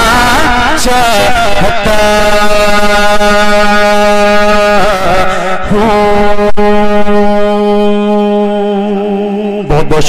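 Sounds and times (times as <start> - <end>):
man singing a long note: 0.0 - 10.0.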